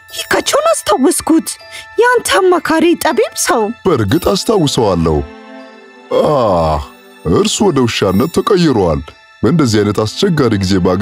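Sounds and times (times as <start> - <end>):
background music: 0.0 - 11.0
person speaking: 0.2 - 5.3, 6.1 - 11.0.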